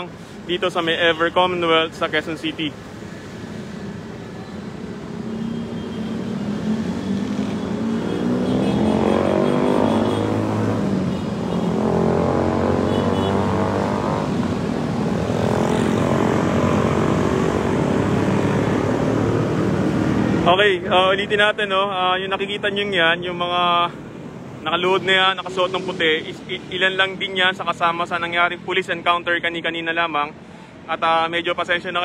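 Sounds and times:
motor vehicles passing: 0.0s - 32.0s.

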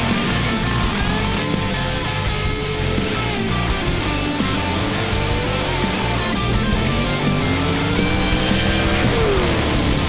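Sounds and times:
heavy rock music: 0.0s - 10.0s
racing engine accelerating: 0.0s - 10.0s.

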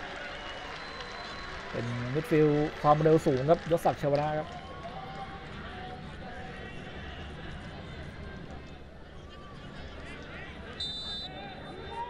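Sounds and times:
stadium ambient noise: 0.0s - 12.0s
male commentator speaking: 1.8s - 4.5s.

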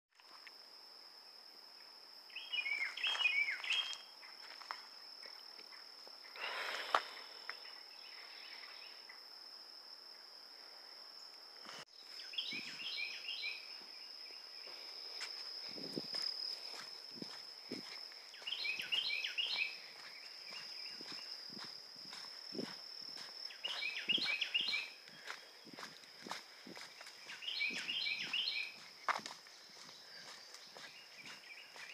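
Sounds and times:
high insect trill: 0.2s - 31.9s
soft footsteps on dirt trail: 2.4s - 7.6s, 11.6s - 31.9s
songbird singing descending notes: 18.3s - 19.8s, 23.5s - 25.0s, 27.2s - 28.8s.

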